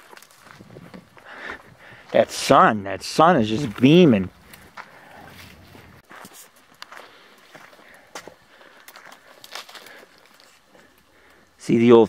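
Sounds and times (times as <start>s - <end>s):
faint footsteps through dry brush: 0.0s - 11.6s.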